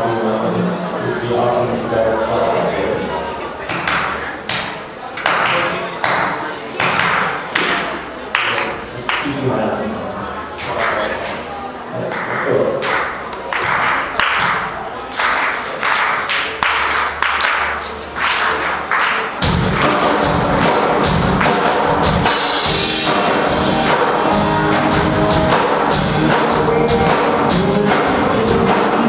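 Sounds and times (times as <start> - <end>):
steady beat of sharp hits: 16.0 - 29.0
live rock band playing: 19.3 - 29.0.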